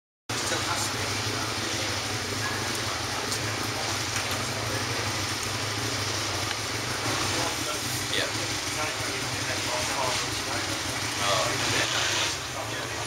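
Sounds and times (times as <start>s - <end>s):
car engine idling: 0.3s - 13.0s
outdoor noise: 0.3s - 13.0s.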